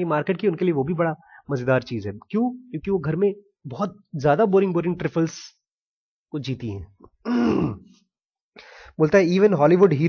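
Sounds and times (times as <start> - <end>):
man clearing his throat: 7.2 - 8.0
man breathing in: 8.6 - 9.0.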